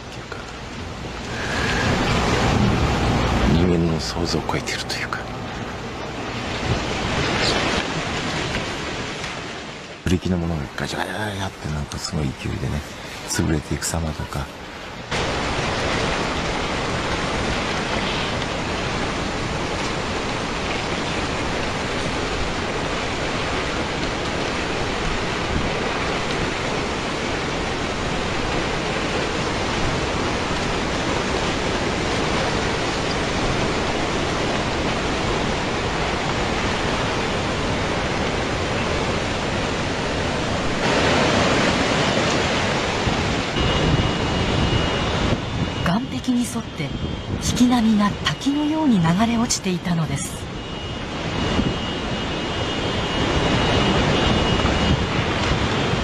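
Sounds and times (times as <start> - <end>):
floodwater rushing roar: 0.0 - 56.0.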